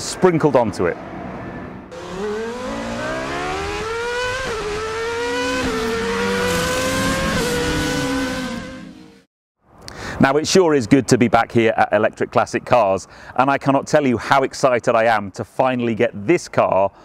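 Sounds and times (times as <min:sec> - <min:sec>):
car engine accelerating hard: 0:01.9 - 0:09.2.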